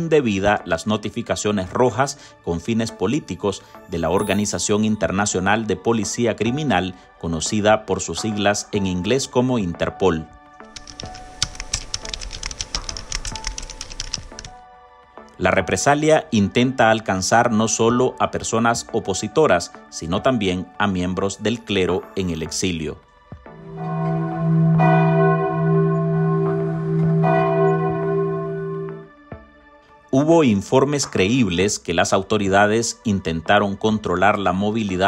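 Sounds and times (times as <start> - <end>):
background music with sustained notes: 0.0 - 35.0
rapid keyboard typing clicks: 10.8 - 14.5
deep bell tolling: 23.6 - 29.1.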